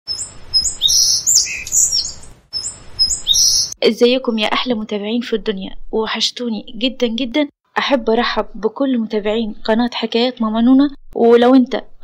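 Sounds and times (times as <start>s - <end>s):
birds chirping and whistling: 0.1s - 3.8s.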